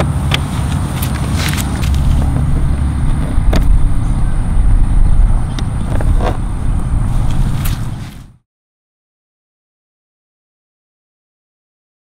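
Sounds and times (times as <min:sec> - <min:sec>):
wind buffeting microphone: 0:00.0 - 0:08.4.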